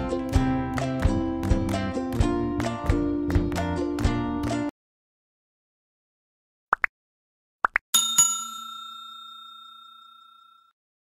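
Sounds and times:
notification bell ding: 8.0 - 10.8.

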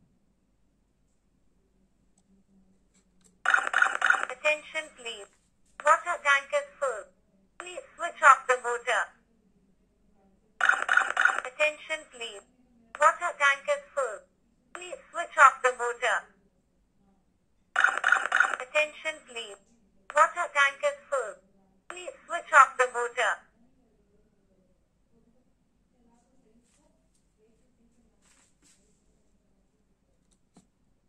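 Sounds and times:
recorded voice warning: 3.5 - 9.2, 10.6 - 14.2, 14.8 - 16.3, 17.8 - 23.5.

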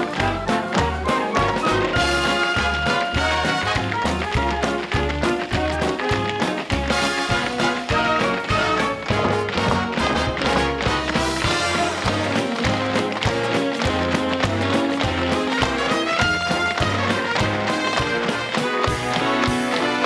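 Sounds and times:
orchestra playing dance music: 0.0 - 20.0
tap shoes clattering: 0.0 - 20.0.

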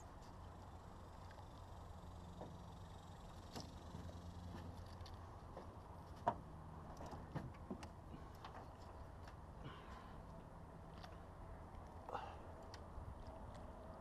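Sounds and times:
faint low hum: 0.0 - 14.0.

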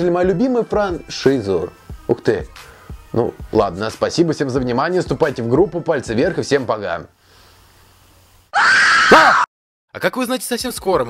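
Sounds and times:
person screaming: 8.5 - 9.5.

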